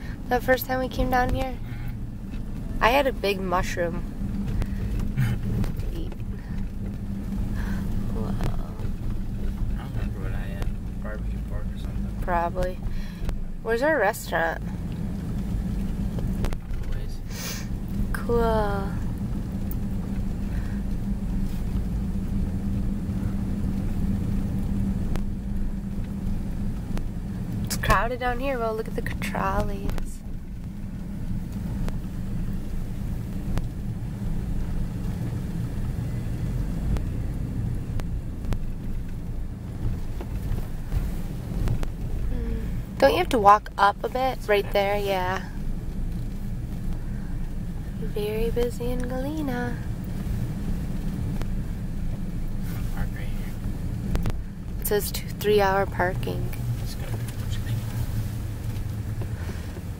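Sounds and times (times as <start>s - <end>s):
car engine hum: 0.0s - 59.9s
road noise inside car: 0.0s - 59.9s.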